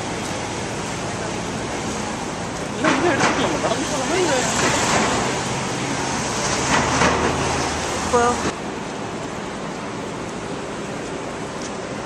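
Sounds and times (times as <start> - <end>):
city street traffic: 0.0 - 12.0.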